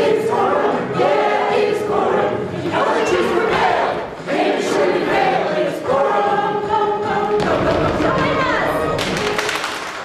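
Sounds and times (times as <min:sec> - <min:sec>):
choir singing with music: 0:00.0 - 0:10.0.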